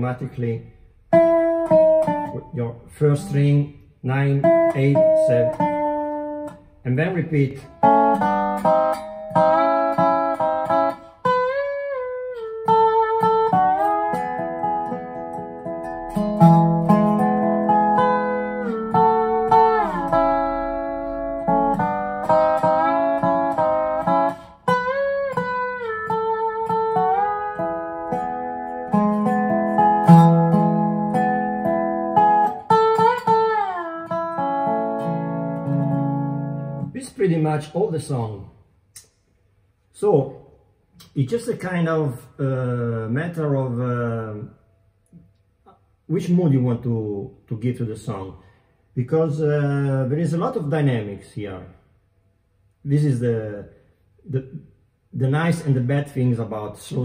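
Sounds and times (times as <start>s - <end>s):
resonator guitar slide melody: 1.1s - 37.0s
low bass notes: 14.0s - 24.3s.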